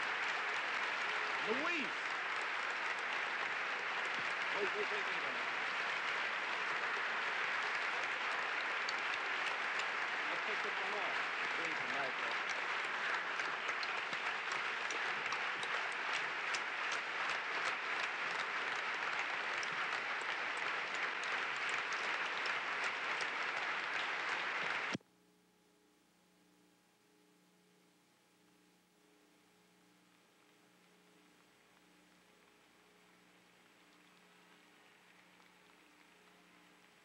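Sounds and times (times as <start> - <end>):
large audience applauding: 0.0 - 25.0, 31.4 - 37.0.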